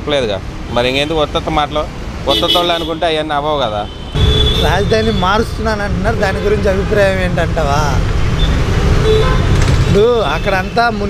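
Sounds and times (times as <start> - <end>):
vehicle engines rumbling: 0.0 - 11.0
vehicle horn toot: 2.3 - 3.0, 3.9 - 5.2, 9.0 - 9.6.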